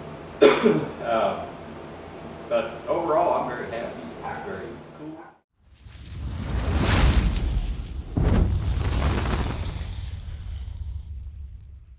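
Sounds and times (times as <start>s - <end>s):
explosion deep rumble: 5.8s - 11.9s.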